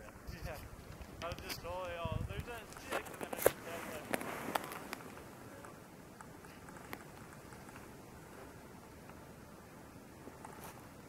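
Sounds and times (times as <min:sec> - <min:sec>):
sharp clicks and crackles: 0:00.0 - 0:07.9
faint outdoor background: 0:00.0 - 0:11.0.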